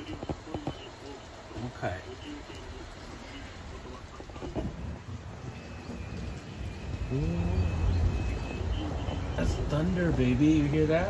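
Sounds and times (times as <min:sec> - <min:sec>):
thunder rumbling: 0:02.9 - 0:11.0.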